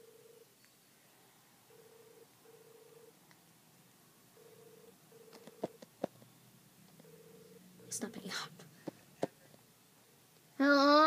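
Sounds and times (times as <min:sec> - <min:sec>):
telephone ringback tone: 0:00.0 - 0:00.5, 0:01.7 - 0:03.2, 0:04.4 - 0:05.8, 0:07.0 - 0:08.0.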